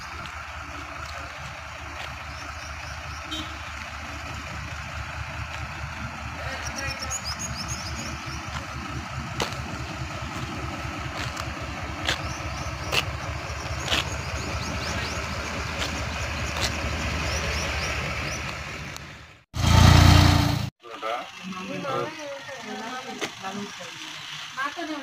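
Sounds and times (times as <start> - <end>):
engine idling: 0.0 - 25.0.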